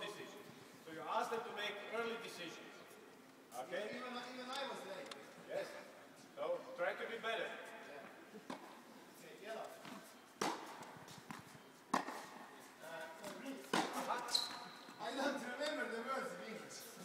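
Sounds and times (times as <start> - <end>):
tennis balls struck with rackets: 8.5 - 8.8, 9.8 - 12.5, 13.2 - 14.3.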